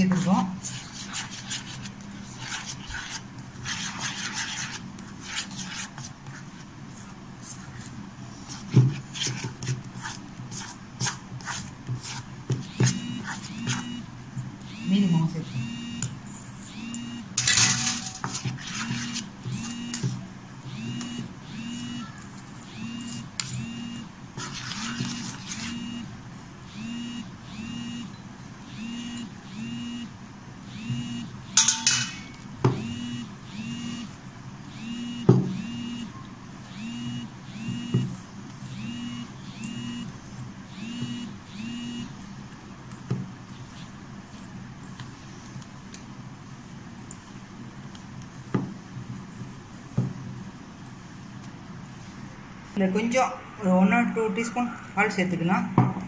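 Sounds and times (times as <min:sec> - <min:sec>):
dough scraping in metal bowl: 0:00.0 - 0:06.7, 0:17.4 - 0:20.1, 0:24.4 - 0:25.8.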